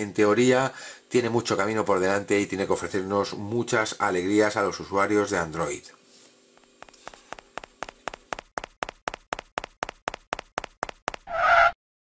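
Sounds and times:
rapid sharp taps: 6.6s - 11.2s.

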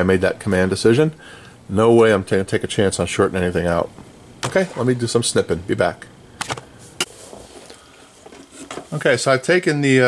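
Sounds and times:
faint room noise: 0.0s - 10.0s.

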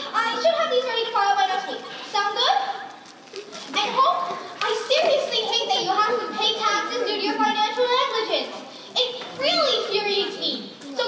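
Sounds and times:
young performers speaking: 0.0s - 11.0s.

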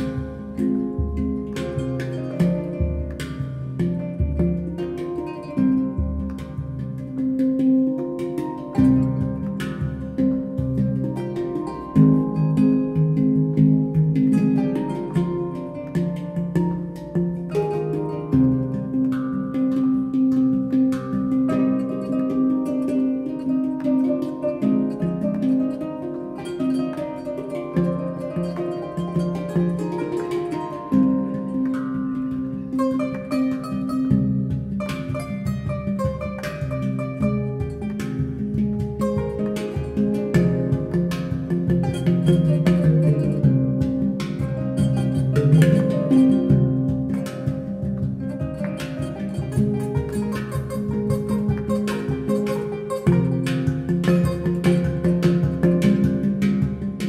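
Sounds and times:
handpan notes ringing: 0.0s - 57.0s
kora strings plucked: 0.0s - 57.0s.

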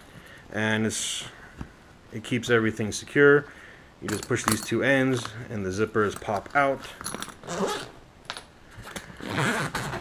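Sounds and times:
metal zipper pulls clinking: 6.1s - 10.0s.

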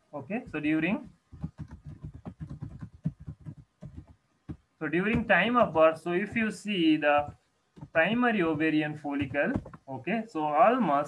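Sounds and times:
computer keyboard typing: 0.4s - 9.9s.

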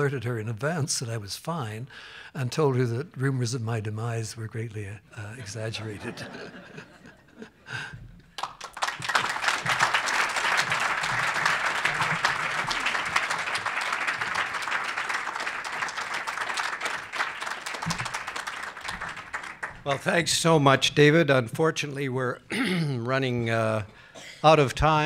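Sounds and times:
audience applause: 7.7s - 20.3s.

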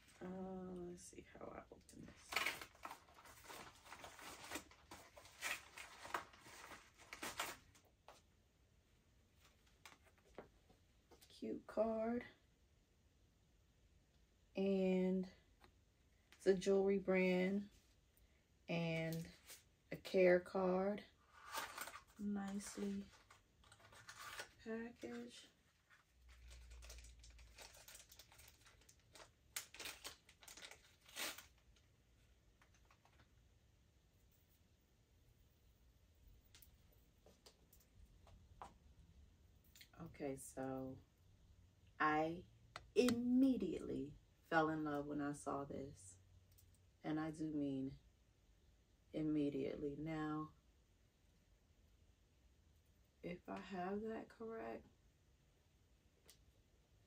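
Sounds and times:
package rustling and scraping: 2.1s - 7.9s, 21.2s - 31.6s.

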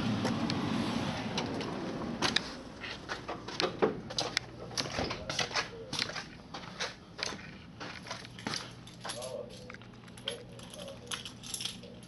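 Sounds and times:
keys jingling: 8.0s - 12.0s.

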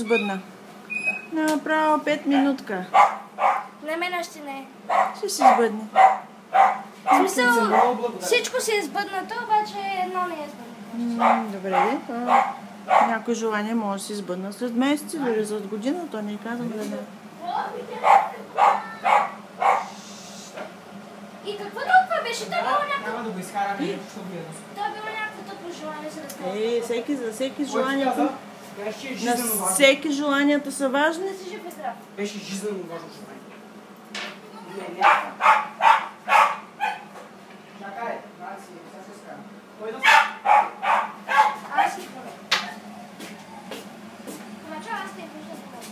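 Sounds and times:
dog barking: 2.4s - 3.8s, 4.9s - 8.0s, 11.2s - 13.2s, 18.0s - 20.0s, 35.0s - 37.1s, 40.0s - 42.0s.

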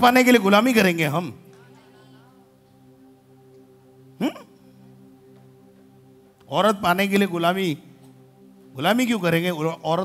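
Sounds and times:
sustained keyboard chord: 0.0s - 10.0s.

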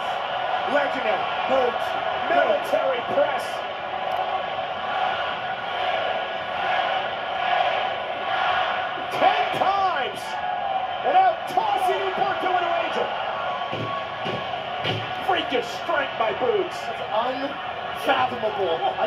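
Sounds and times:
crowd cheering on television: 0.0s - 19.0s.

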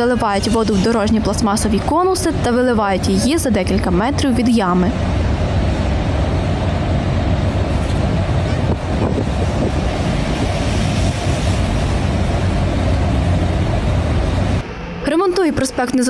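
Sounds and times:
road traffic rumble: 0.0s - 15.8s.

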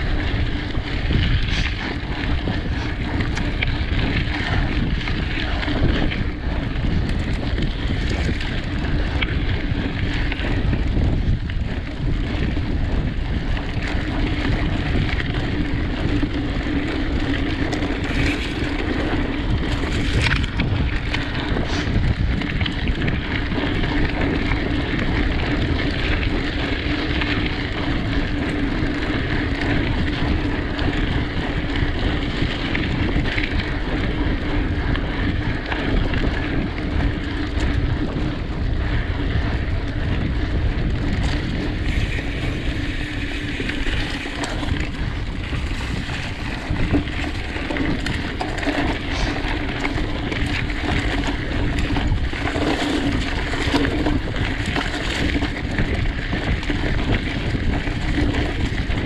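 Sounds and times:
bike tyres rumbling over dirt: 0.0s - 59.0s
wind rushing over microphone: 0.0s - 59.0s.

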